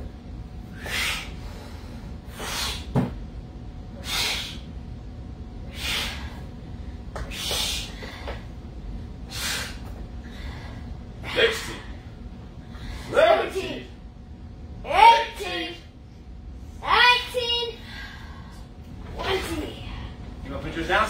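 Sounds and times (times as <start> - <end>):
sharp forceful breaths: 0.7 - 2.9, 4.0 - 4.7, 5.7 - 6.5, 9.2 - 11.8.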